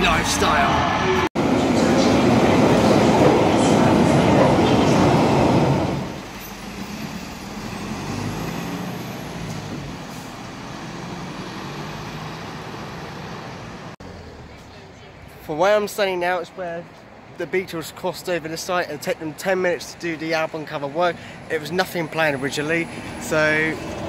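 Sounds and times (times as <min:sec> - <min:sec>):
street traffic: 0:00.0 - 0:24.0.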